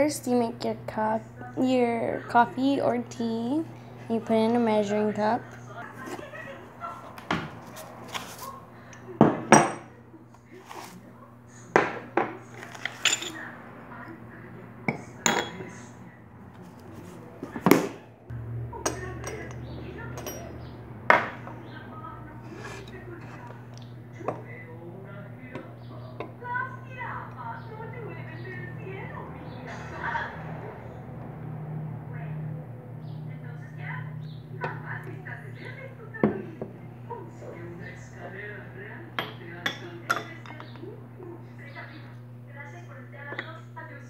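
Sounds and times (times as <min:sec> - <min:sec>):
low steady hum: 0:00.0 - 0:44.0
dishes clinking and knocking: 0:09.2 - 0:10.0, 0:11.8 - 0:13.4, 0:14.8 - 0:15.8, 0:18.8 - 0:21.6, 0:39.2 - 0:40.9.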